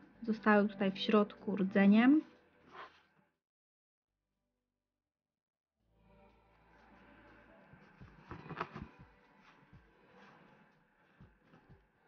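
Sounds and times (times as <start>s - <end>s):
cord rustling and clicking: 8.2s - 9.0s.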